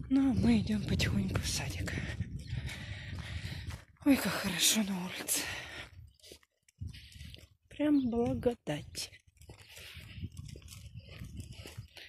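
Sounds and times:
footsteps on pavement: 0.0 - 12.0
wind rumbling on microphone: 0.0 - 12.0.

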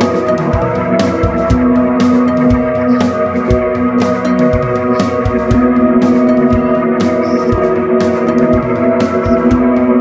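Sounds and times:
low drum thumps: 0.0 - 10.0
sustained chord: 0.0 - 10.0.

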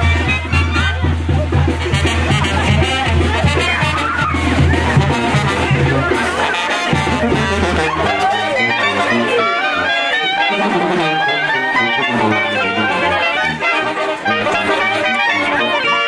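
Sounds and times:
brass band playing dance tune: 0.0 - 16.0.

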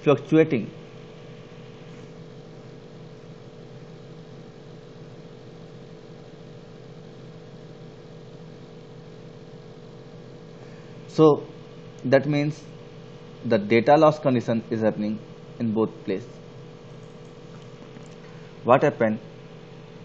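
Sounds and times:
low hum: 10.5 - 20.0.

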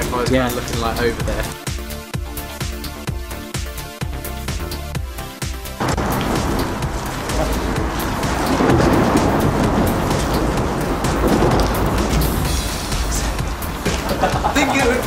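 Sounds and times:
music: 0.0 - 15.0
wind buffeting microphone: 5.8 - 14.7.

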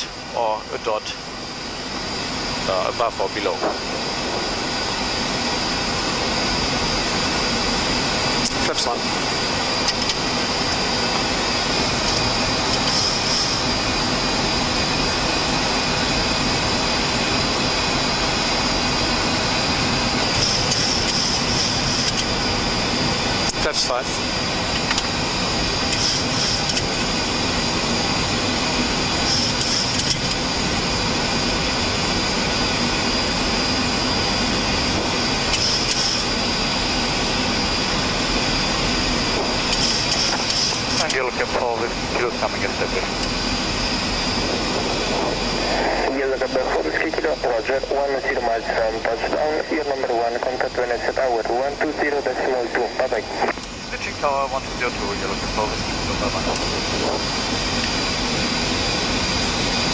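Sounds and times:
cockpit airflow and engine noise: 0.0 - 59.9
voices: 45.9 - 57.1.

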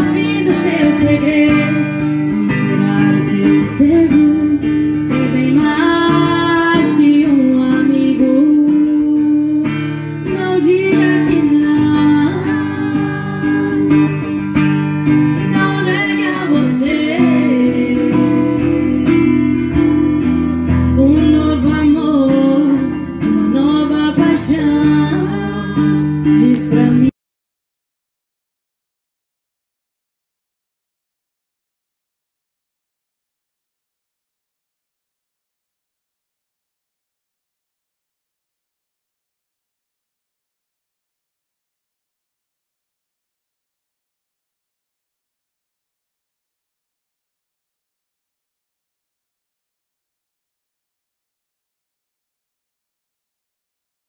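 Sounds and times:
woman singing into a microphone: 0.0 - 14.5, 15.3 - 27.1
strummed acoustic guitar: 0.0 - 27.1.

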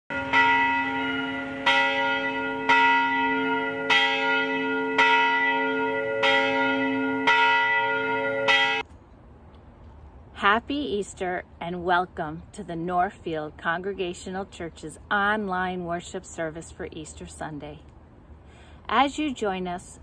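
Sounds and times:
church bell ringing: 0.1 - 8.8.

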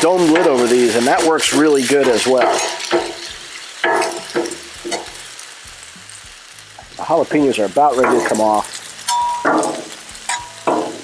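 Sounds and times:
metal spatula scraping griddle: 0.0 - 5.3, 7.8 - 11.0
peppers sizzling on griddle: 0.0 - 11.0.

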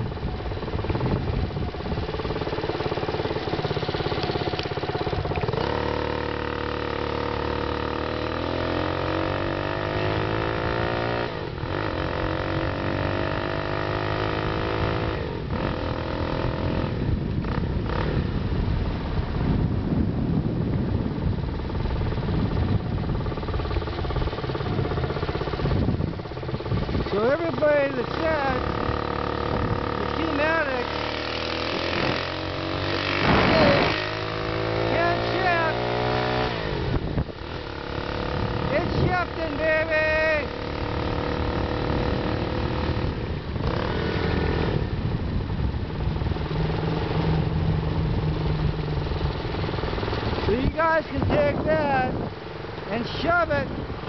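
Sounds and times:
motorized bicycle engine accelerating: 0.0 - 10.6.

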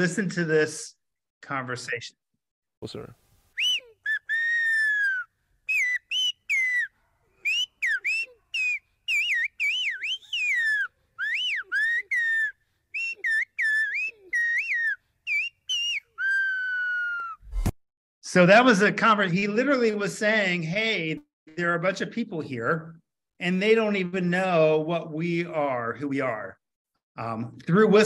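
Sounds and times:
finger whistling: 3.6 - 17.6.

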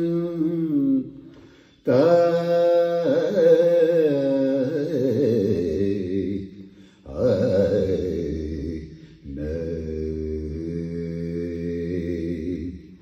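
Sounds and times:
man singing unaccompanied: 0.0 - 12.9.

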